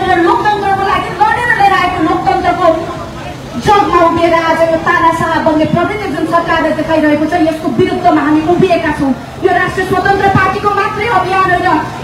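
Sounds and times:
woman speaking: 0.0 - 2.9, 3.6 - 11.9.

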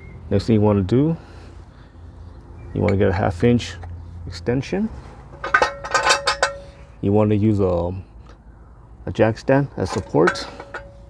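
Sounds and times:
metallic ring: 5.4 - 6.9, 10.2 - 11.0.

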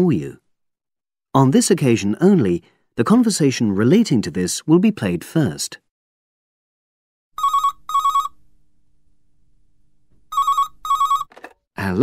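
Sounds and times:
telephone ringing: 7.4 - 8.4, 10.3 - 11.6.

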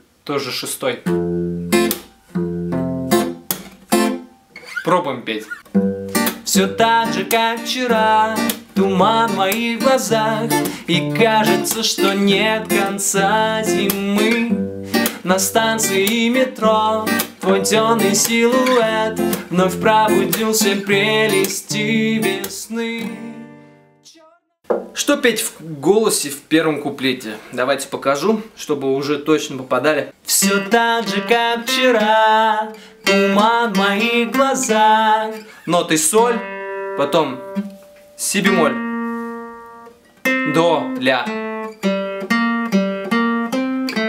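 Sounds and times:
acoustic guitar fingerpicking: 1.1 - 24.0, 30.3 - 44.0
hand slapping guitar strings: 1.8 - 2.1, 3.2 - 4.2, 5.5 - 6.6, 8.4 - 10.8, 11.6 - 12.1, 13.8 - 15.3, 17.1 - 17.4, 18.2 - 19.6, 22.4 - 22.6
man's voice: 6.4 - 23.4, 24.1 - 24.4, 25.0 - 36.4, 38.2 - 38.8
man singing: 6.4 - 24.4, 30.2 - 36.4.

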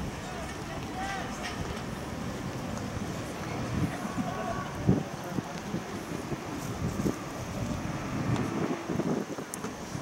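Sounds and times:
open-air background noise: 0.0 - 10.0
wind buffeting microphone: 0.0 - 10.0.

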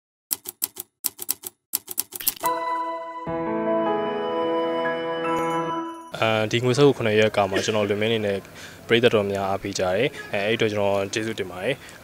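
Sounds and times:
typewriter key clicks: 0.3 - 2.5.

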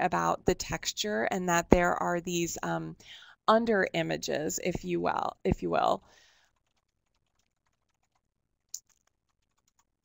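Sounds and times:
typing on computer keyboard: 6.4 - 10.0.

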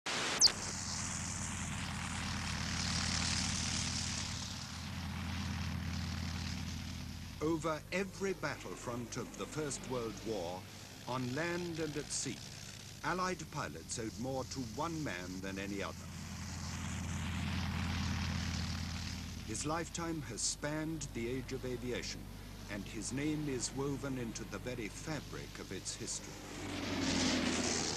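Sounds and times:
propeller aircraft engine droning: 0.1 - 27.9.

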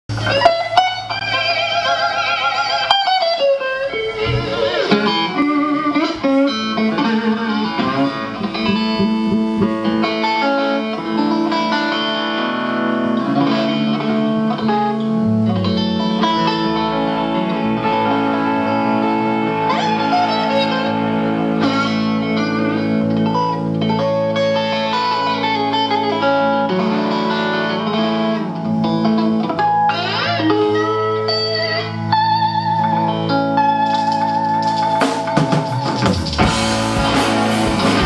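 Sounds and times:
electric guitar through amplifier: 0.0 - 38.0
low guitar note: 3.7 - 38.0.

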